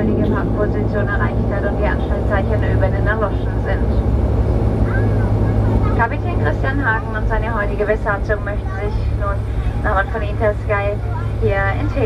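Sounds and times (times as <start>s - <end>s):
turboprop engines droning: 0.0s - 12.0s.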